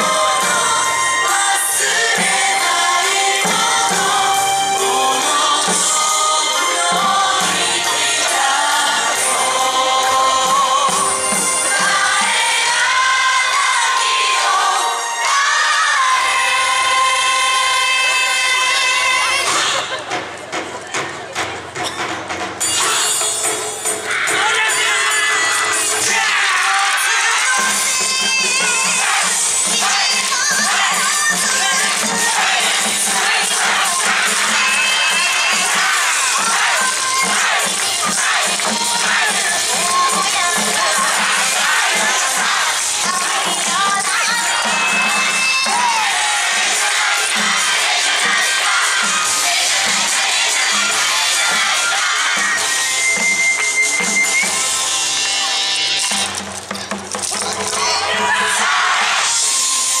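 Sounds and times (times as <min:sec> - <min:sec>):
dancers shouting together: 0:24.1 - 0:52.7, 0:57.6 - 0:59.4
dance music over speakers: 0:25.8 - 0:56.0
wooden clappers clacking: 0:56.0 - 0:58.0.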